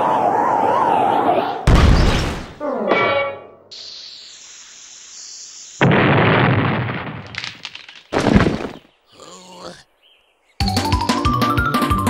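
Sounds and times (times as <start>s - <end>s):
high hiss: 3.7s - 5.9s
crackling: 3.8s - 9.3s.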